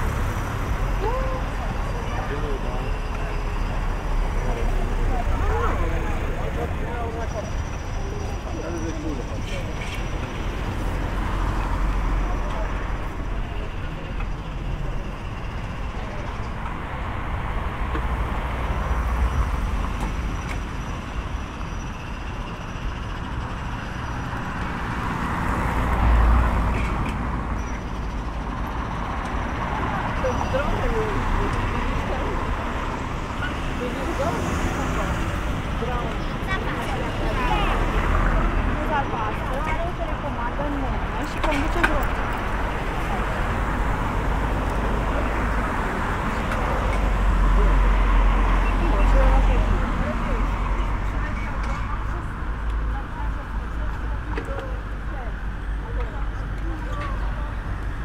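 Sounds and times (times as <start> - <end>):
road traffic: 0.0 - 58.0
people talking: 0.9 - 10.1, 12.1 - 15.2, 29.8 - 57.8.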